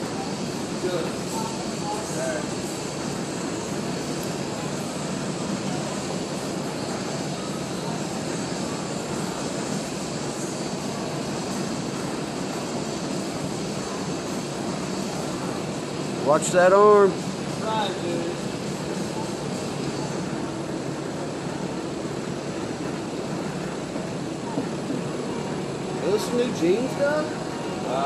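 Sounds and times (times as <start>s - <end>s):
faint voices: 0.0s - 28.0s
steady rushing noise: 0.0s - 28.0s.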